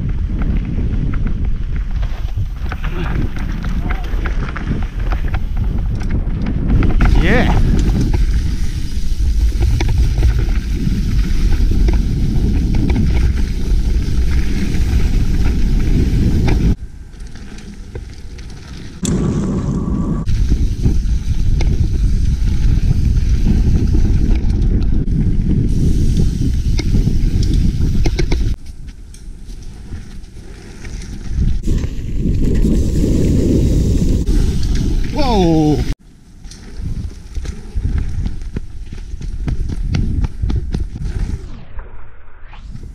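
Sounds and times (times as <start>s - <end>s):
wind on microphone: 0.0s - 16.9s, 19.0s - 36.0s, 36.6s - 42.9s
bike tyres rumbling on dirt: 0.0s - 41.8s
bike and camera rattling: 0.0s - 42.0s.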